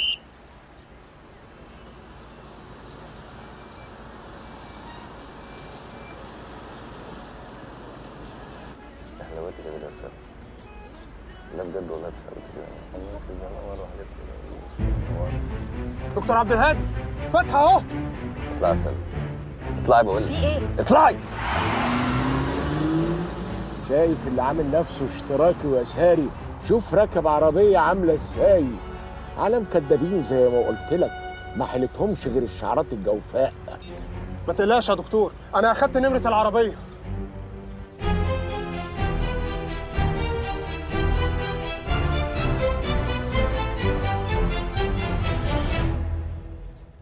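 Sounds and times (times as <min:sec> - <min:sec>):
traffic rumble: 0:00.0 - 0:47.0
car and motorbike engines: 0:00.5 - 0:15.5, 0:18.6 - 0:30.3
car engine accelerating: 0:20.9 - 0:26.2.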